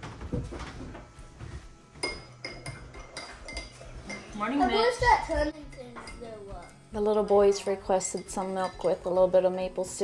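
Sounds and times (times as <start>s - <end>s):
glasses clinking on wooden table: 2.0s - 4.4s.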